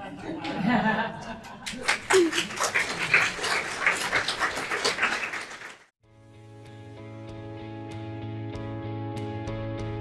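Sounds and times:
audience applauding: 1.7 - 6.0.

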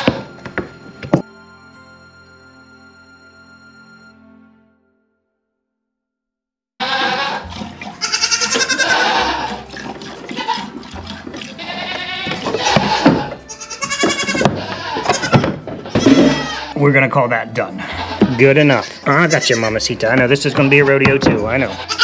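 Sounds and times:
goats bleating: 6.8 - 16.8, 17.6 - 22.0
dull thumps: 14.0 - 16.5, 21.0 - 21.7.

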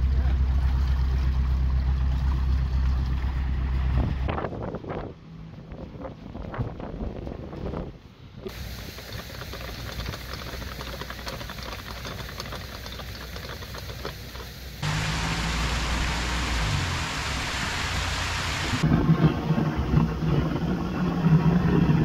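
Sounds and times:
water gushing through lock gates: 8.5 - 22.0
water spilling down a weir: 8.5 - 22.0.

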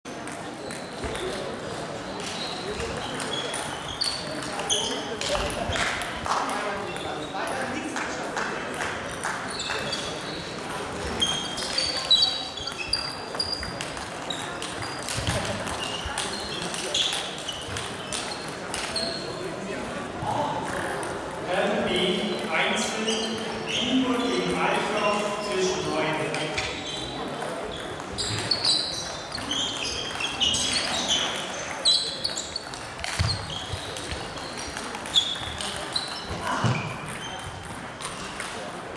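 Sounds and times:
people talking: 0.1 - 38.9
table tennis balls clicking: 0.2 - 19.9, 20.6 - 23.9, 25.1 - 38.9.

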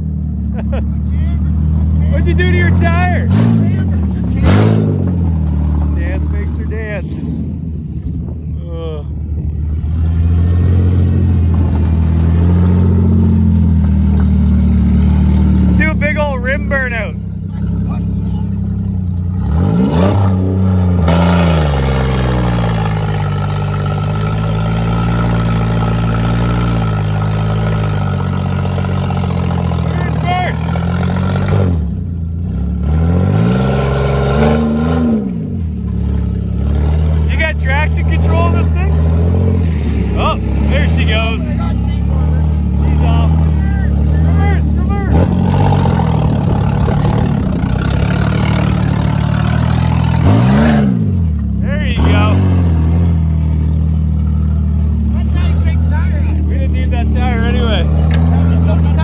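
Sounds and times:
car engine revving hard: 2.1 - 5.4, 18.8 - 59.0.

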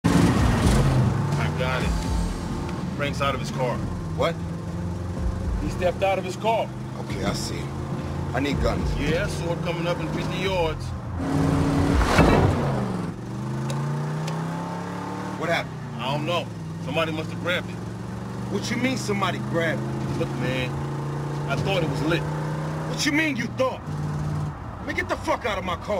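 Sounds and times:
car engine running: 0.0 - 25.3.

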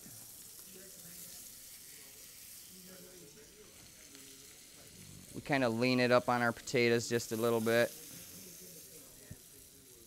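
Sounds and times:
fish sizzling in a pan: 0.0 - 10.0.

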